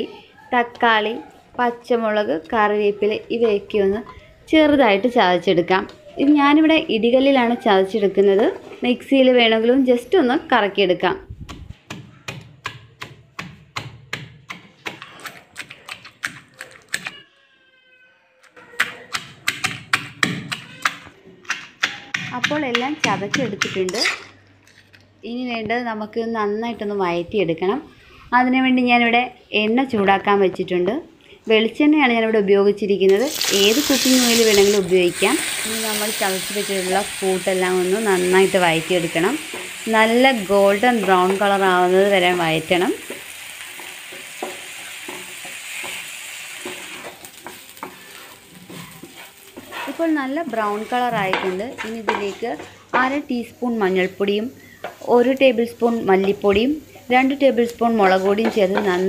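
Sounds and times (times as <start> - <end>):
vegetables sizzling in oil: 33.1 - 59.0
wooden spatula scraping a pan: 40.6 - 53.0.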